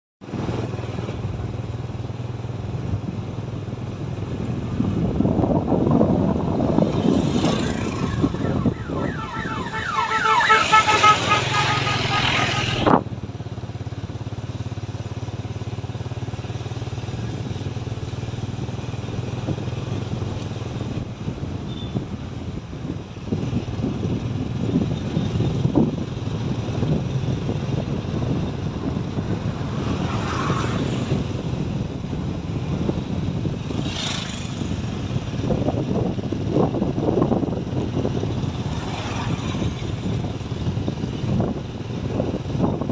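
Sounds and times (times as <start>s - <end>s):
vehicle accelerating: 4.2s - 21.4s, 23.2s - 42.9s.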